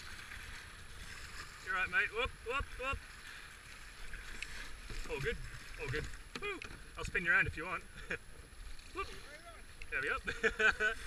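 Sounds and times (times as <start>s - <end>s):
whitewater rushing and churning: 0.0s - 11.0s.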